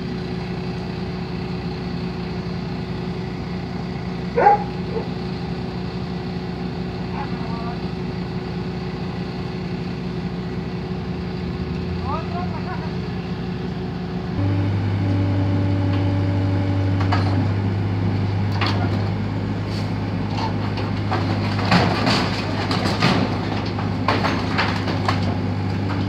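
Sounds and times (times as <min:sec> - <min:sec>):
vehicle engine running: 0:00.0 - 0:26.0
low drone: 0:14.3 - 0:18.3.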